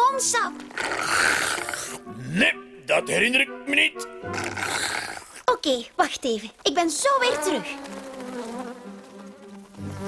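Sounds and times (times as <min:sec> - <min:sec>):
cartoon bee buzzing: 0:00.5 - 0:02.2, 0:04.1 - 0:05.4, 0:07.0 - 0:10.0.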